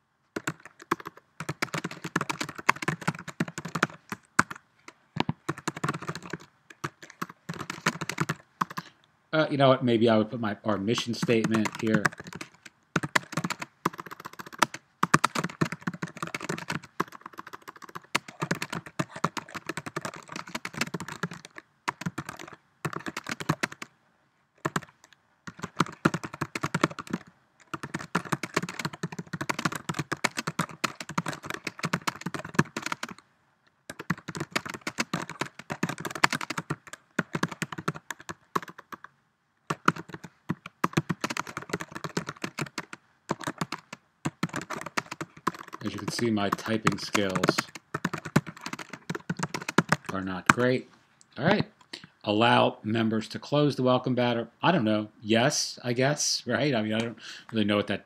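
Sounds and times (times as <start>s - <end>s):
fast typing on keyboard: 0.4s - 4.6s, 5.2s - 8.9s, 10.9s - 23.9s, 24.6s - 33.2s, 33.9s - 39.1s, 39.7s - 50.7s.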